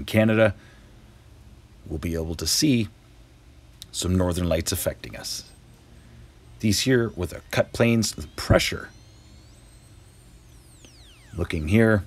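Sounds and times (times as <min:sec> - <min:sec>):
low background hum: 0:00.0 - 0:12.0
high tones gliding downward: 0:04.0 - 0:12.0.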